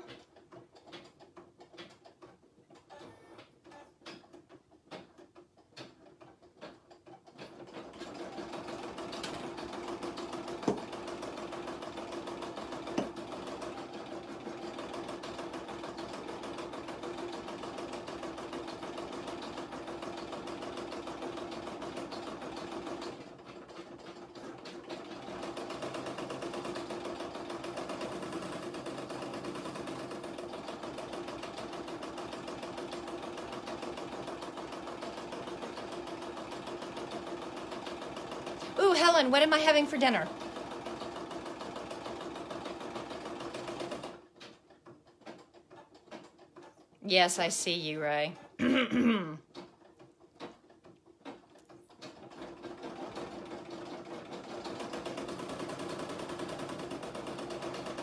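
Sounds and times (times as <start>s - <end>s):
embroidery machine stitching: 0.0s - 47.0s, 49.4s - 58.0s.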